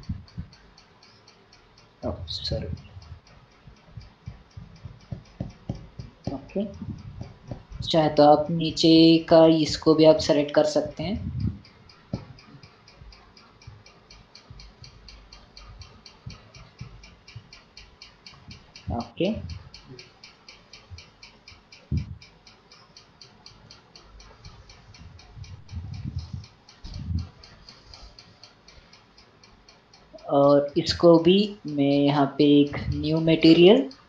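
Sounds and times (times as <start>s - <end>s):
rapid ticking: 0.0s - 34.0s.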